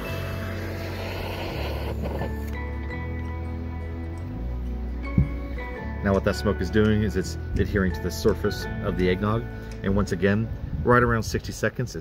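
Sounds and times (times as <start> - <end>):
kitchen torch flame hissing: 0.0 - 2.6
music with steady bass line: 0.0 - 10.8
knock: 5.1 - 5.4.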